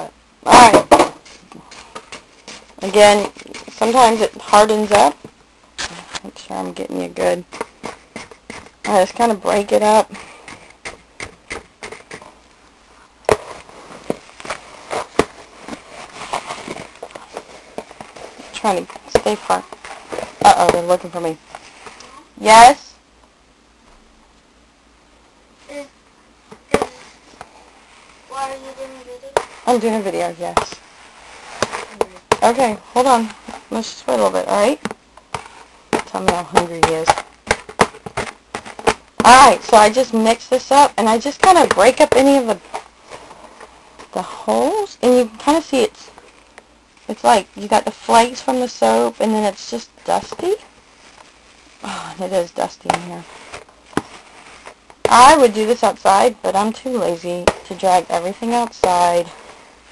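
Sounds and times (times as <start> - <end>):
metal spoon scraping plastic tub: 0.9 - 5.0
metal spoon chopping powder: 7.5 - 9.2, 10.1 - 12.3.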